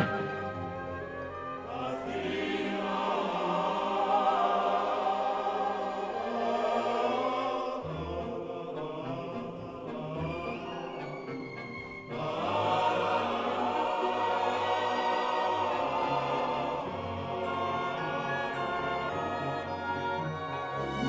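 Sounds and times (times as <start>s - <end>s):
choir singing sustained chords: 0.0s - 21.0s
orchestral music: 0.0s - 21.0s.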